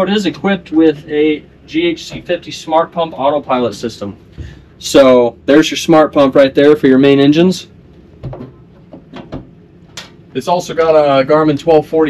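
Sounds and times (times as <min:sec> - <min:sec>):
small door knocks and clicks: 0:08.2 - 0:10.2.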